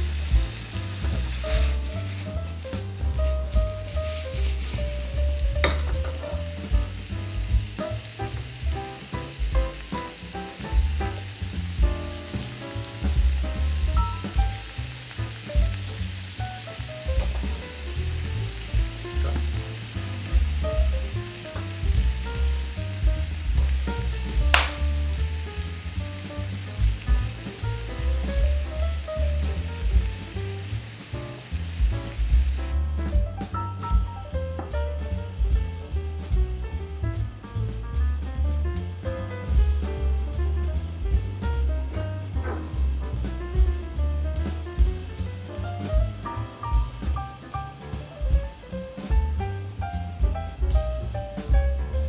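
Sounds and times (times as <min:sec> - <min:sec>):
meat and onions sizzling in pan: 0:00.0 - 0:35.6, 0:40.8 - 0:43.3.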